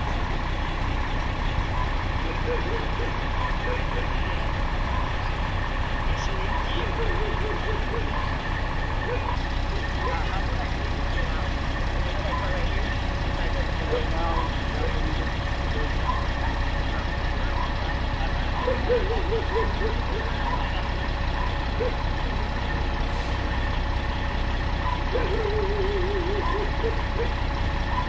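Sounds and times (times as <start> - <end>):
fire engines idling: 0.0 - 28.0
indistinct voices: 0.0 - 28.0.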